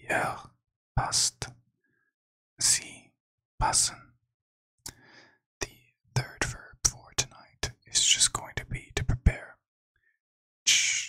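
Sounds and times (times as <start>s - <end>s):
man whispering: 0.0s - 1.5s, 2.6s - 4.1s, 5.6s - 9.6s, 10.7s - 11.0s.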